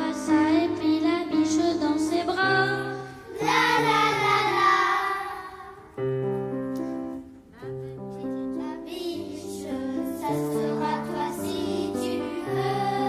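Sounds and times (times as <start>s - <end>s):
children's choir singing: 0.0s - 6.0s, 8.1s - 13.0s
grand piano accompaniment: 0.0s - 13.0s.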